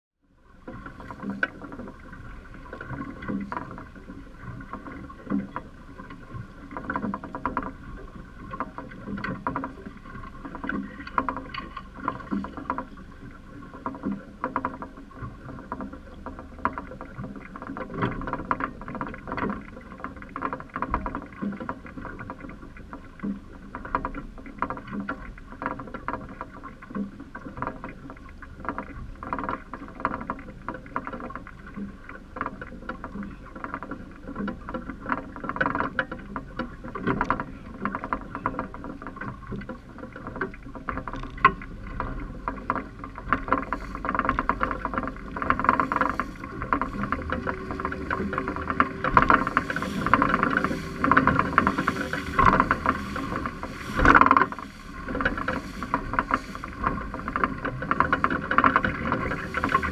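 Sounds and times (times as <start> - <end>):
water slapping against boat hull: 0.5 - 59.9
steady hum: 41.8 - 59.9.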